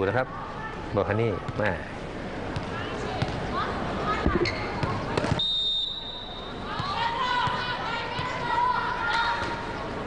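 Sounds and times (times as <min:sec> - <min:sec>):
crowd hubbub: 0:00.0 - 0:10.0
sneaker squeaks: 0:04.4 - 0:06.9
referee whistle blast: 0:05.4 - 0:06.6.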